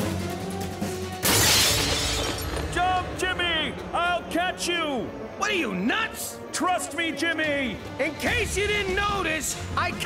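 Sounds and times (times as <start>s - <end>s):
window glass shattering: 1.2s - 2.7s.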